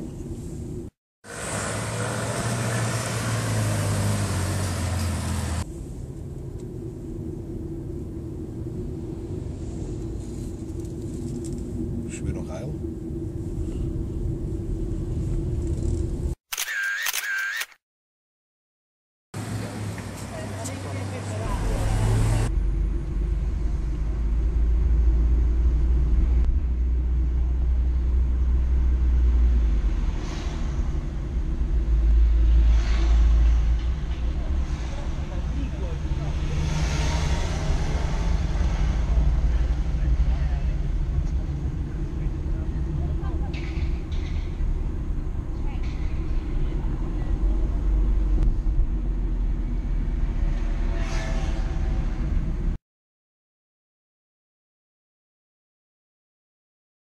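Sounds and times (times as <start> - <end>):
car engine and road rumble: 0.0 - 16.4, 19.4 - 52.8
sports car passing: 1.3 - 5.7, 28.9 - 41.9.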